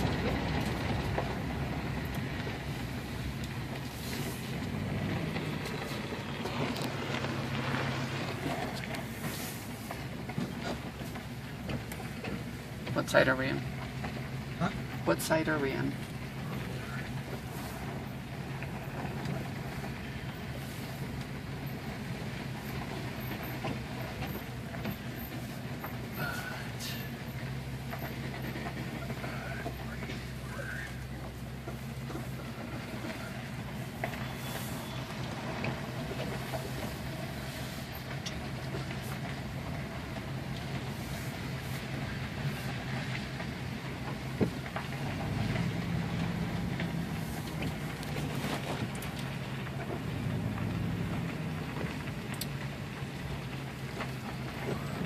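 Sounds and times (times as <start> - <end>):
tyres rolling over gravel: 0.0 - 55.0
vehicle engine running: 0.0 - 55.0.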